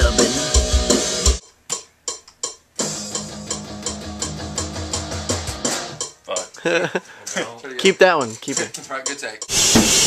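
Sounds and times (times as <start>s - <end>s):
band music: 0.0s - 1.4s, 2.8s - 10.0s
drum hits: 9.5s - 10.0s.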